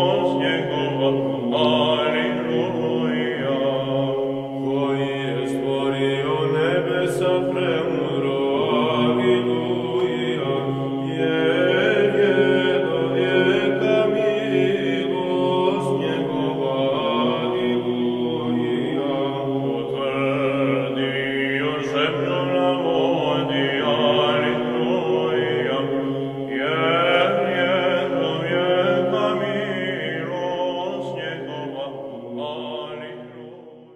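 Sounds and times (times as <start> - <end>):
chanted choral singing: 0.0 - 33.9.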